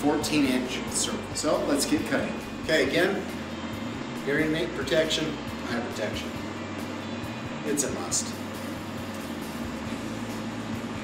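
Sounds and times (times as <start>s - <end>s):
bandsaw motor humming: 0.0s - 11.0s.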